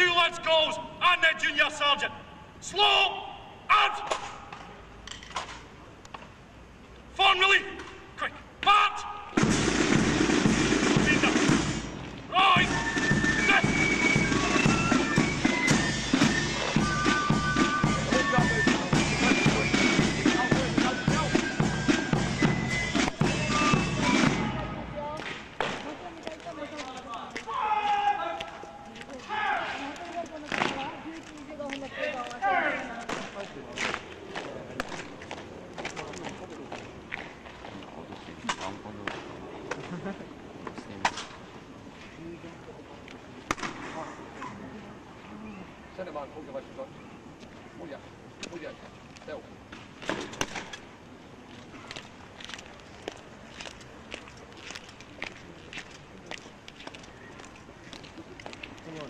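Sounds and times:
man shouting commands: 0.0 - 4.4, 7.1 - 9.4, 11.0 - 11.4, 12.3 - 14.6, 27.1 - 29.8, 32.0 - 33.0
fifes and drums playing a march: 9.4 - 25.2.

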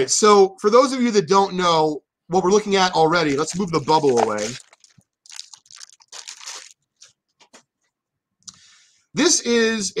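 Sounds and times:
bubble wrap crinkling: 3.0 - 7.2.

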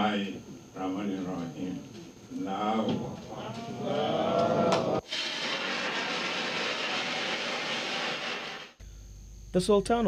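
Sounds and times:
confetti cannon hissing: 5.0 - 8.8.

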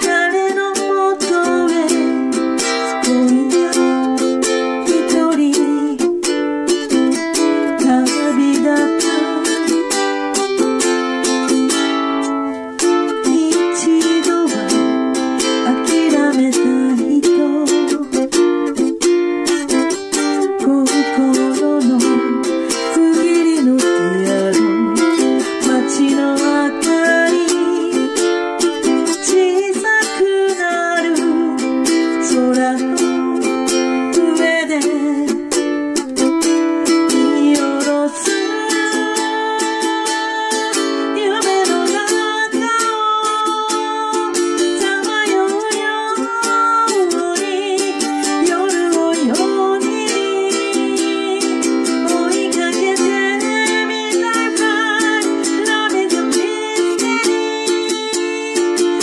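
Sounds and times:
ukulele strummed rapidly: 0.0 - 59.0.

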